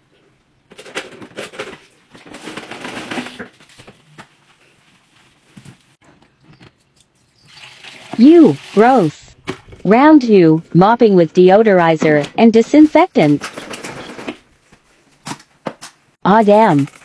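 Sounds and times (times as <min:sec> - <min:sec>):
water pouring from bucket: 0:07.5 - 0:09.2
water sloshing in bucket: 0:07.5 - 0:09.2.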